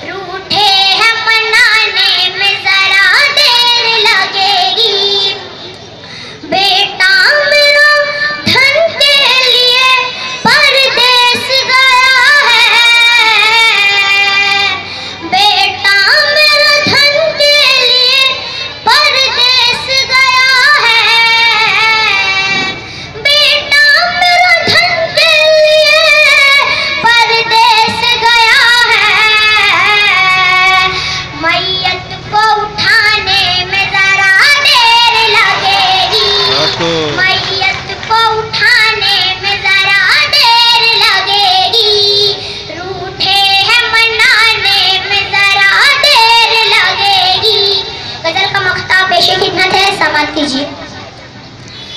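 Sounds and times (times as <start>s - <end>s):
girl singing into microphone: 0.0s - 50.8s.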